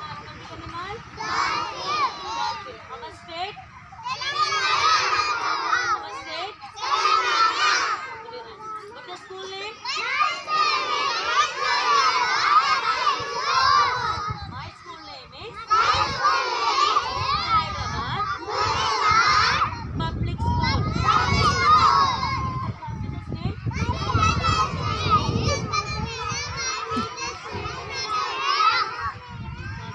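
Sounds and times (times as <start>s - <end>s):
children shouting in chorus: 1.1s - 2.9s, 3.8s - 9.0s, 9.7s - 23.0s, 23.6s - 29.9s.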